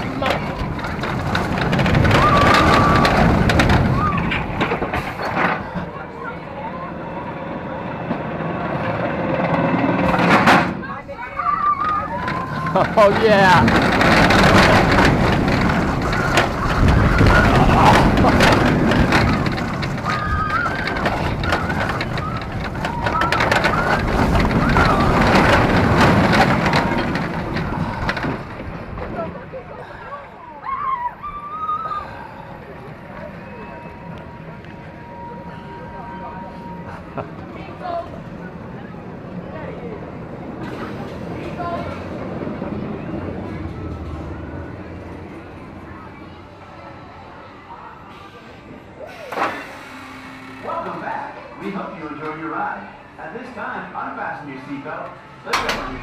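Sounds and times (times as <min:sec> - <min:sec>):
roller coaster track rumble: 0:00.0 - 0:56.0.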